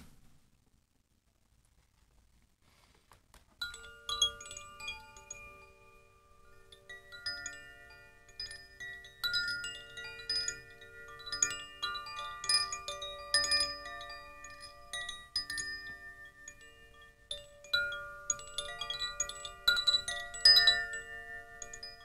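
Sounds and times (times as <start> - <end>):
chimes ringing: 3.6 - 22.0.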